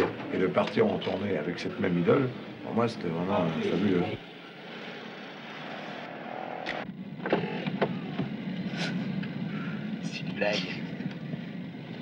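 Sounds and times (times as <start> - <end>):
engine and road rumble in cabin: 6.7 - 12.0.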